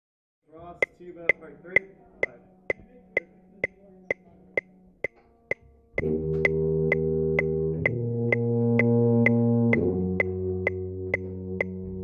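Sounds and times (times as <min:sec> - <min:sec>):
metronome ticking: 0:00.8 - 0:12.0.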